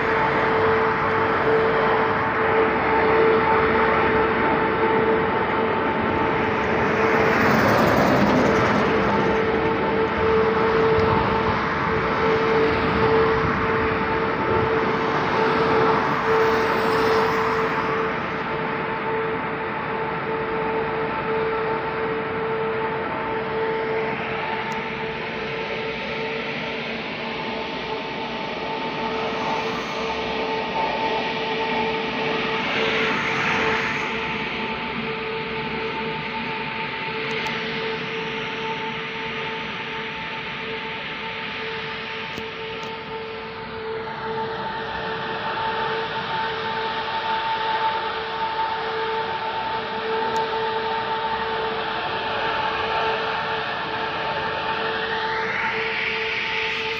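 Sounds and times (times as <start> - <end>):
industrial turbines roaring: 0.0 - 56.9.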